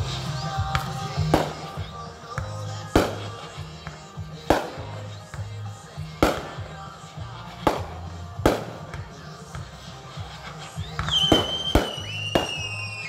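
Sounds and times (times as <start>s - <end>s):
firework shells bursting: 0.0s - 13.0s
music with low bass line: 0.0s - 13.0s.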